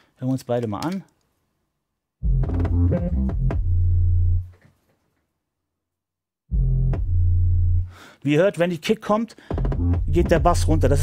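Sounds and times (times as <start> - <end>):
hip-hop drum beat: 2.2 - 3.8, 6.5 - 7.4, 9.5 - 11.0
deep bass: 2.2 - 4.5, 6.5 - 7.9, 9.6 - 11.0.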